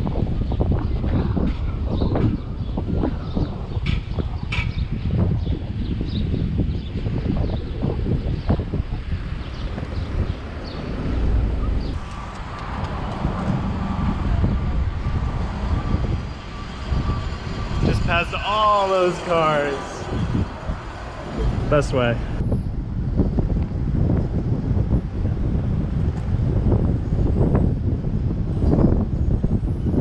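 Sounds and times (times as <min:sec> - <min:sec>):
tyre and road noise: 0:00.0 - 0:30.0
wind buffeting microphone: 0:00.0 - 0:30.0.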